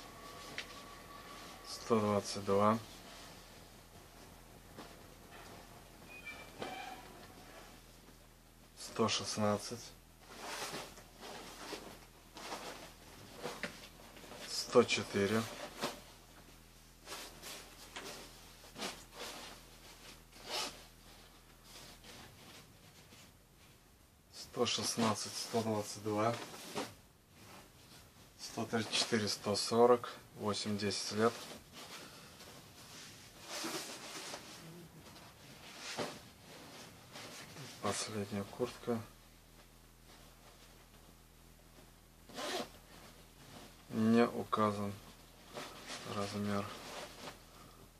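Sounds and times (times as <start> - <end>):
fabric rustling: 0.0 - 8.2, 31.1 - 38.7, 44.7 - 47.9
jacket fabric rustling: 0.0 - 8.3, 10.1 - 24.0, 31.0 - 47.9
jacket zipper swish: 42.3 - 42.7.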